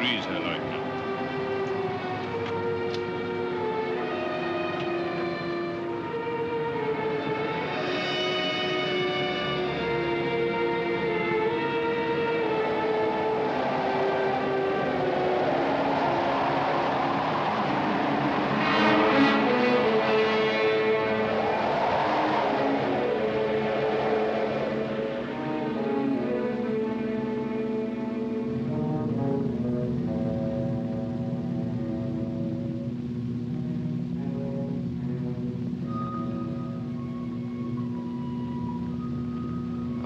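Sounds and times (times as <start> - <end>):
orchestral music with sustained chords: 0.0 - 40.0
steady noisy background: 0.0 - 40.0.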